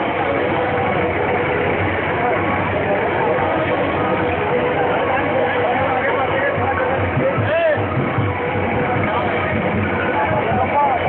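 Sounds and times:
dense background noise: 0:00.0 - 0:11.0
faint voices: 0:00.0 - 0:11.0
vehicle engine running: 0:00.0 - 0:11.0.

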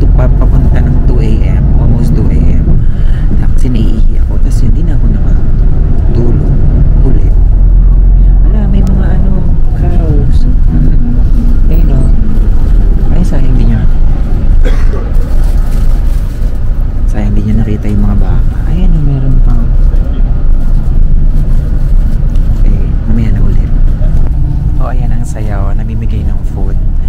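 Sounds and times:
man talking: 0:00.0 - 0:07.5, 0:08.4 - 0:12.4, 0:13.0 - 0:14.0, 0:17.1 - 0:19.8, 0:22.6 - 0:27.0
bus rumbling from inside: 0:00.0 - 0:27.0.

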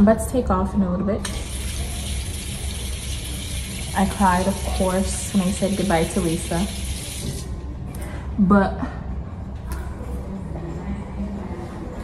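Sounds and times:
low background hum: 0:00.0 - 0:12.0
tap water running into sink: 0:01.2 - 0:07.5.

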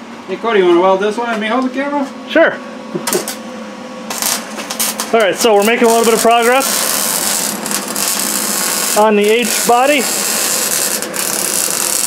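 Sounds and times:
welder arc crackling: 0:04.1 - 0:12.0.

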